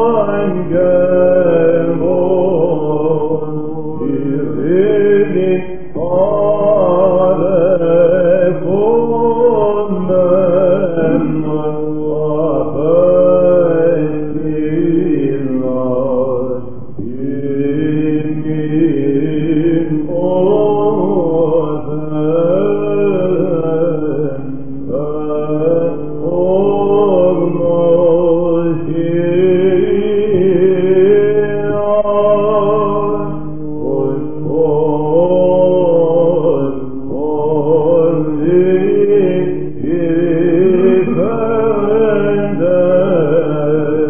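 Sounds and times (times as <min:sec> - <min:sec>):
held vocal drone: 0:00.0 - 0:44.0
men singing chant: 0:00.0 - 0:44.0.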